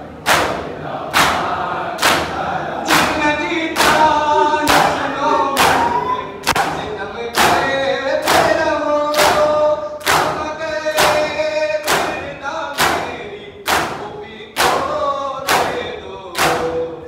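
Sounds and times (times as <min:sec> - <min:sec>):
crowd chanting: 0:00.0 - 0:10.4
group striking chests in unison: 0:00.1 - 0:16.8.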